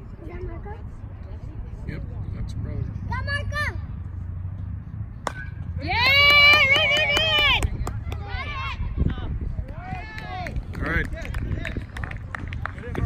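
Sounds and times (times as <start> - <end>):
baseball bat hitting ball: 5.2 - 7.4.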